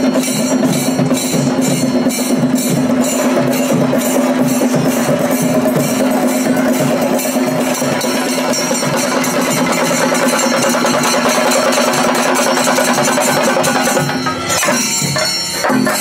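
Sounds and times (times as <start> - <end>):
drums beaten in fast roll: 0.0 - 16.0.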